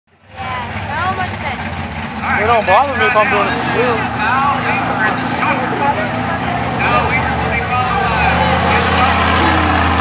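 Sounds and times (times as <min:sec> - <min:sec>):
truck engine running: 0:00.2 - 0:10.0
people talking: 0:00.3 - 0:10.0.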